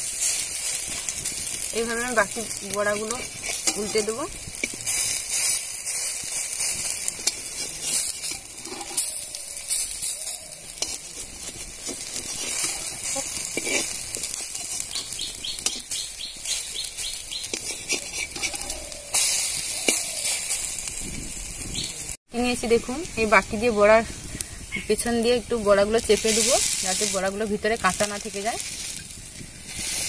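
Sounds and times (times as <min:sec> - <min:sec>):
fritters sizzling in oil: 0:00.0 - 0:30.0
metal spatula scraping pan: 0:00.2 - 0:16.7, 0:17.4 - 0:20.9.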